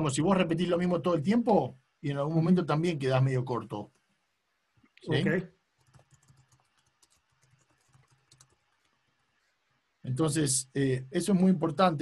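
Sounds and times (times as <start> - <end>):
typing on computer keyboard: 5.8 - 8.8.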